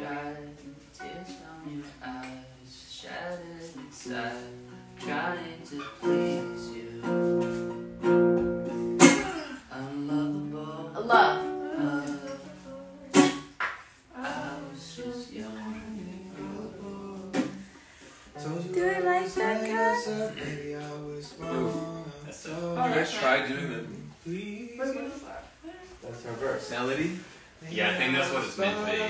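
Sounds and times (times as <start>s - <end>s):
acoustic guitar strumming: 0.0s - 2.2s, 3.8s - 24.1s
person singing: 0.0s - 7.9s, 9.0s - 13.5s, 14.1s - 17.7s, 18.3s - 25.1s.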